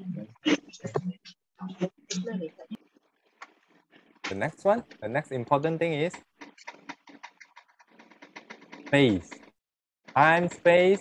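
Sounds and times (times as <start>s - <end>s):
person speaking: 0.0s - 2.8s
keyboard typing clicks: 6.0s - 10.3s.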